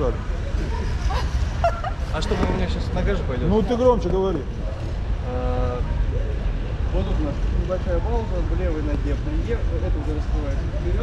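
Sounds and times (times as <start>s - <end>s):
low urban rumble: 0.0s - 11.0s.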